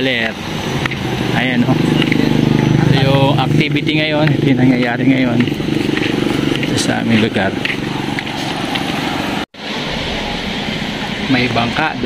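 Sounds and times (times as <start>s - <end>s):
sea surf on a beach: 8.2s - 12.0s.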